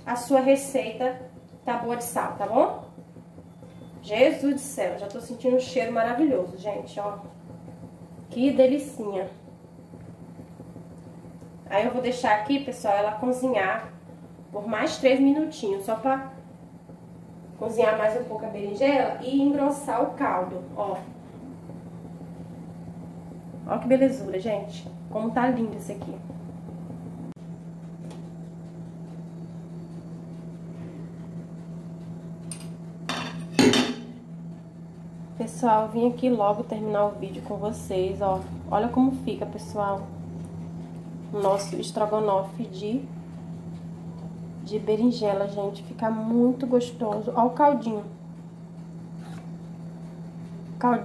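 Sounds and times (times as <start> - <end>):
steady low hum: 0.0 - 51.0
cookware clattering: 32.6 - 34.1.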